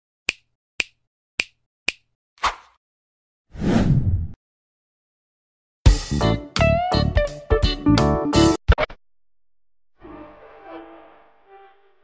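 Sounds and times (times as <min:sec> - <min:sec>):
sharp snaps: 0:00.3 - 0:02.7.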